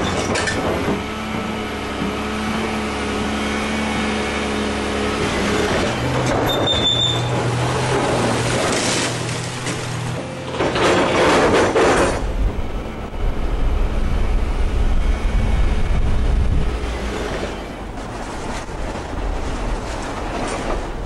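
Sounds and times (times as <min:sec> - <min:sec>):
excavator bucket crunching rubble: 0:00.0 - 0:12.6, 0:16.9 - 0:21.0
diesel engine rumbling: 0:00.0 - 0:21.0.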